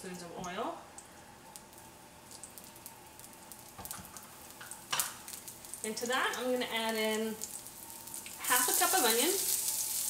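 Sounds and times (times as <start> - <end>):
oil sizzling in a skillet: 1.4 - 10.0.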